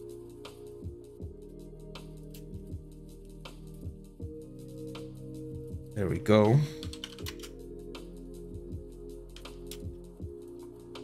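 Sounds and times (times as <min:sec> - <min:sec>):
quiet background music: 0:00.0 - 0:11.0
computer keyboard clicks: 0:06.8 - 0:07.5.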